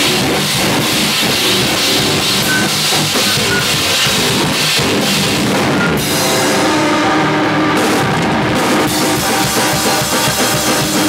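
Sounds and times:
distorted electric guitars: 0:00.0 - 0:11.0
drum kit with cymbals: 0:00.0 - 0:11.0.

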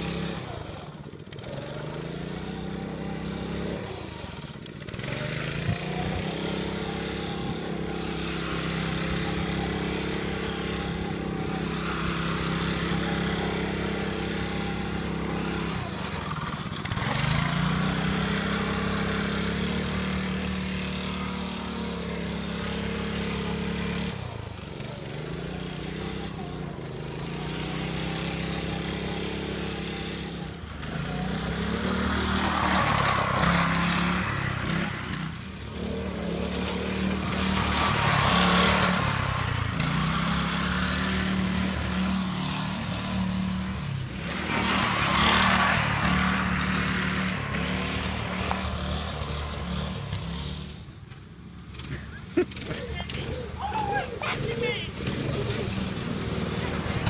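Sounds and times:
go-kart engine revving: 0:00.0 - 0:57.0.

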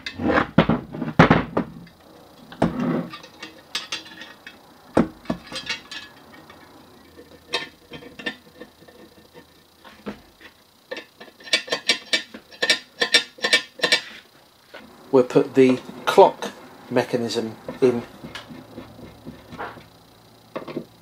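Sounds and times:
metal parts clattering and clicking: 0:02.5 - 0:10.2, 0:10.9 - 0:14.2.

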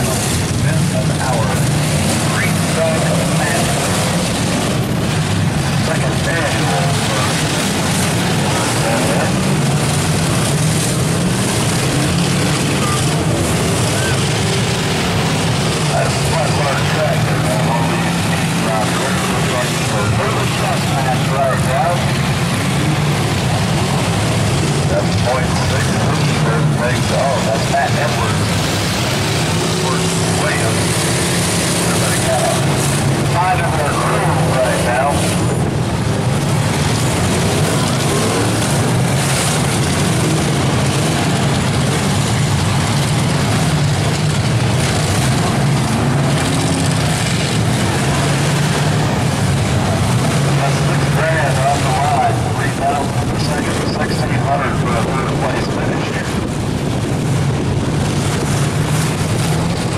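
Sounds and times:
car engines running: 0:00.0 - 0:59.9.

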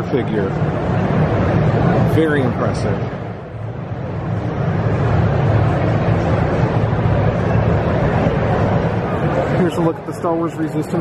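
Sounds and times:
continuous low hum: 0:00.0 - 0:11.0
faint crowd murmur: 0:00.0 - 0:11.0.

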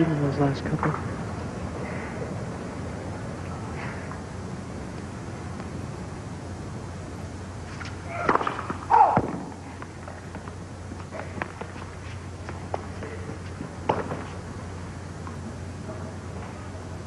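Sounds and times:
tennis ball hit by racket: 0:08.1 - 0:09.6.

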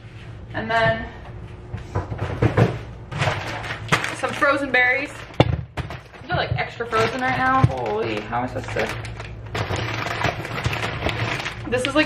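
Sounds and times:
plastic bag rustling: 0:03.1 - 0:12.0.

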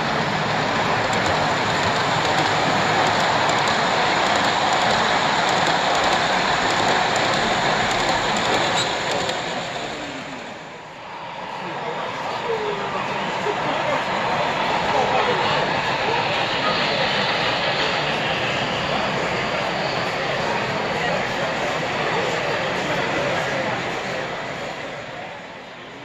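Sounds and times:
model train wheels rumbling on rail: 0:00.0 - 0:26.0
murmur of voices: 0:00.0 - 0:26.0.

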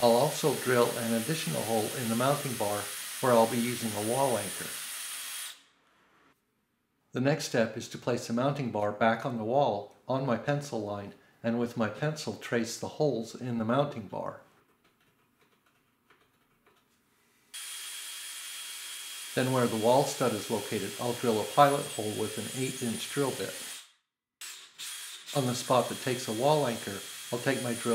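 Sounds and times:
drill whining through metal: 0:00.0 - 0:05.7, 0:17.6 - 0:27.9.

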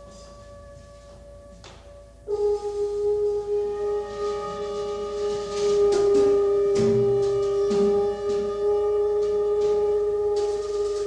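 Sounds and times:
held pure note: 0:00.0 - 0:11.0
soft hissy strokes: 0:02.3 - 0:11.0.

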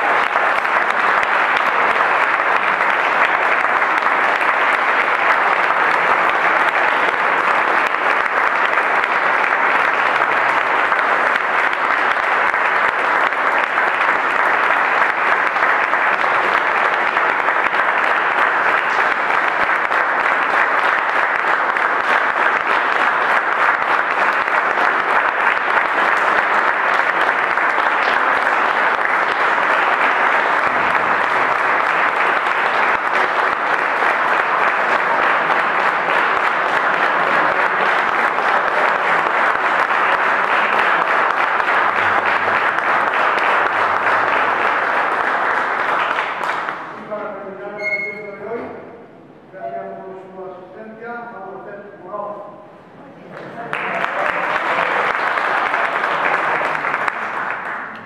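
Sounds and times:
audience applauding: 0:00.0 - 0:48.1, 0:53.2 - 0:58.0.

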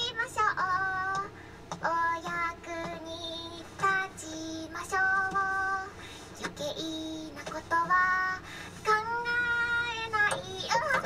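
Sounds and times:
high girlish voice singing: 0:00.0 - 0:11.0.

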